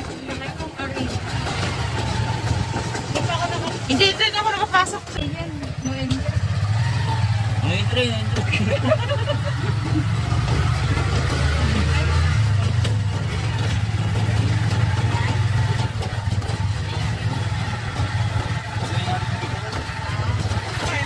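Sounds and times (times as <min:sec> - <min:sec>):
faint voices: 0:00.0 - 0:21.0
vehicle engine rumbling: 0:00.0 - 0:21.0.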